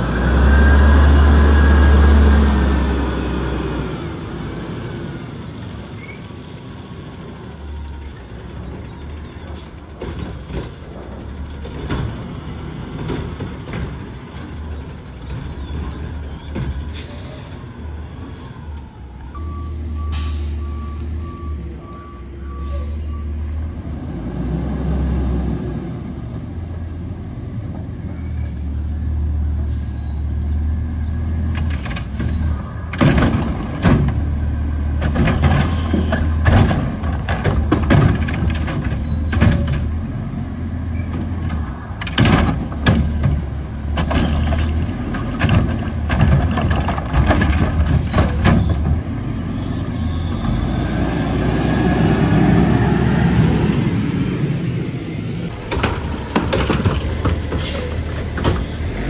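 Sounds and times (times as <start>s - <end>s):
reversing beeps: 19.3s - 23.4s
air brake hiss: 20.1s - 20.7s, 22.6s - 23.2s
loud metal clanks and knocks: 31.6s - 34.3s, 35.0s - 39.9s, 41.5s - 49.0s, 55.6s - 58.9s
garbage truck diesel engine running: 32.9s - 59.0s.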